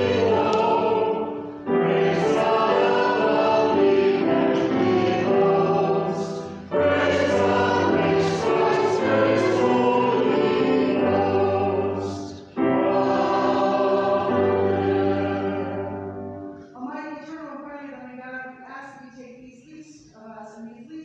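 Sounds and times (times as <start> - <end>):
choir singing: 0.0 - 16.6
choir breaths: 0.0 - 16.8.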